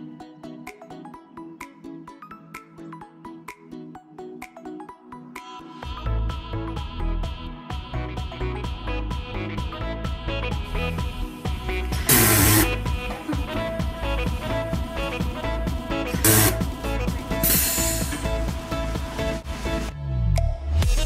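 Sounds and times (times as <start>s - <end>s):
upbeat electronic music: 0.0s - 21.0s
soda maker carbonating hiss: 12.0s - 12.8s, 16.2s - 16.6s, 17.4s - 18.4s.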